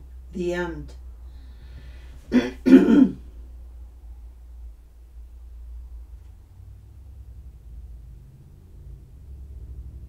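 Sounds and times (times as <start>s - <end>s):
woman clearing her throat: 2.3s - 3.2s.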